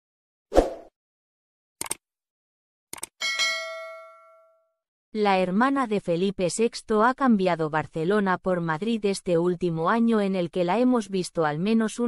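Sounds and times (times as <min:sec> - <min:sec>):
notification bell ding: 0:03.2 - 0:04.6.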